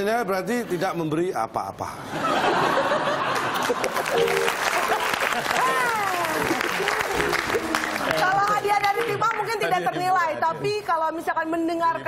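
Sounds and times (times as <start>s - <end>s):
audience applauding: 3.2s - 9.8s.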